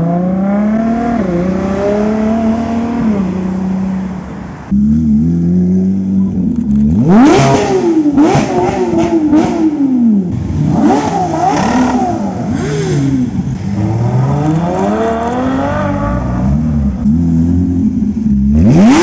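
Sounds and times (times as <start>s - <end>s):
sports car engines revving: 0.0s - 19.0s.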